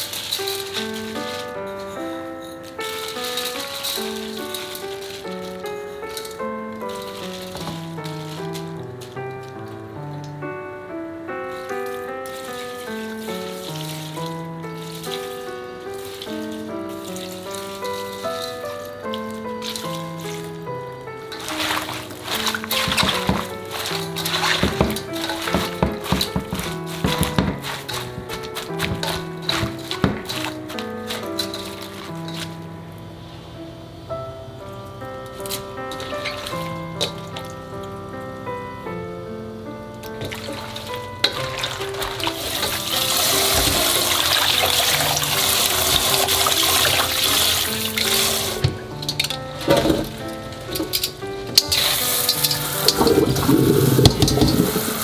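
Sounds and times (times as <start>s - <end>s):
water pouring over cabbage leaves: 0.0s - 10.4s, 11.5s - 32.7s, 35.4s - 37.9s, 40.0s - 55.0s
light plucked background music: 0.0s - 33.4s, 34.0s - 55.0s.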